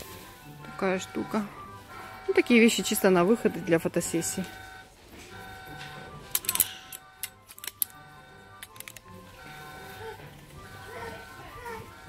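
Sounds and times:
background music with held notes: 0.0s - 12.0s
sharp clicks and rattles: 6.3s - 8.0s, 8.6s - 9.1s.

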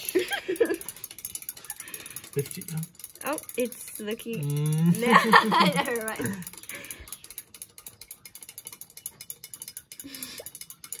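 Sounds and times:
rapid mechanical clicking: 0.0s - 11.0s.

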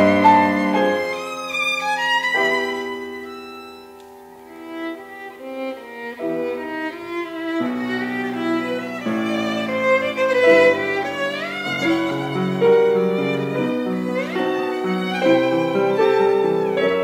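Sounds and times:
grand piano accompaniment: 0.0s - 17.0s
violin playing slow melody: 0.0s - 17.0s.

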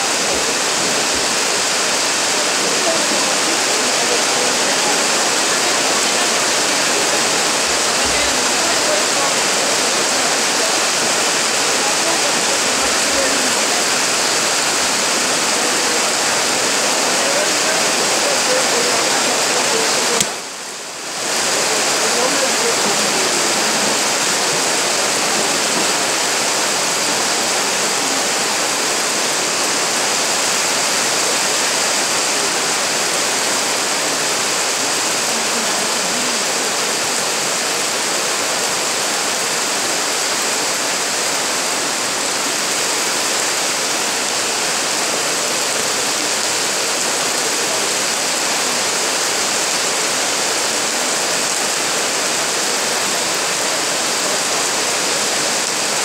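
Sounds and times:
loud steady hiss: 0.0s - 56.0s.

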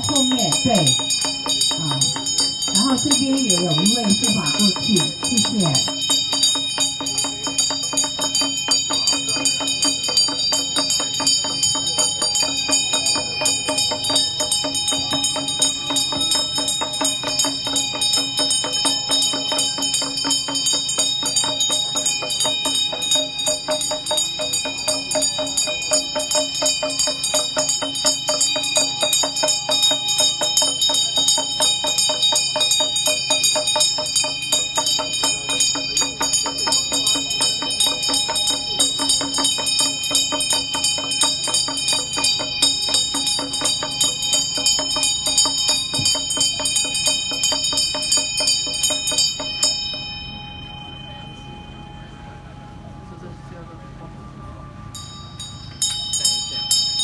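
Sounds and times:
hand bell ringing: 0.0s - 53.1s, 54.6s - 57.0s.

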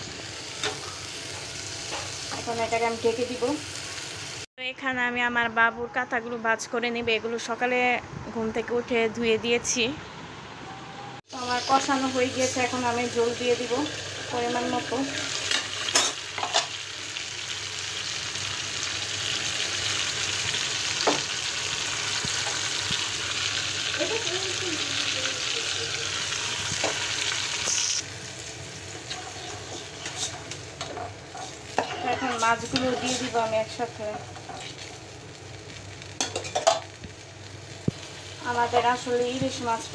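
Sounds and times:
curry sizzling in a pot: 0.0s - 4.5s, 11.2s - 39.9s.

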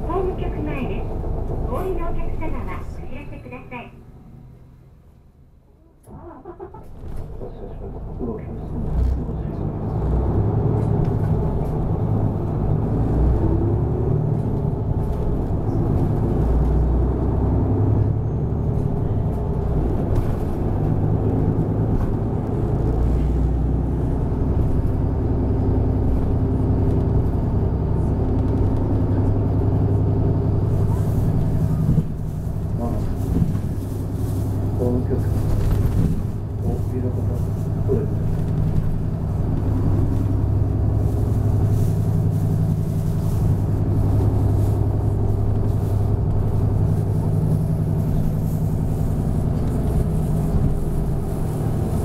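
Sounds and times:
bus engine: 0.0s - 52.0s
road noise: 0.0s - 52.0s.

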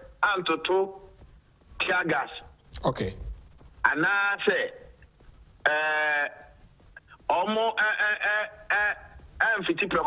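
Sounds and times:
man speaking: 1.8s - 3.3s.

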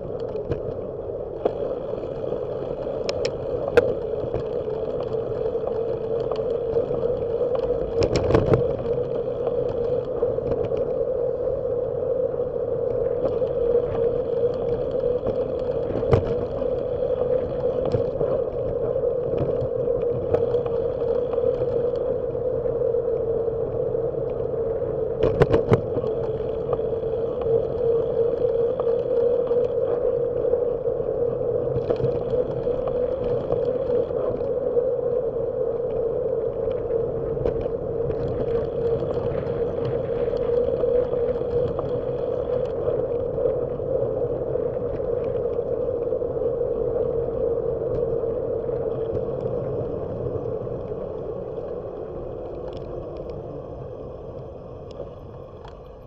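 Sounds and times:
steady hum: 0.0s - 56.0s
wind and road noise: 0.0s - 56.0s.

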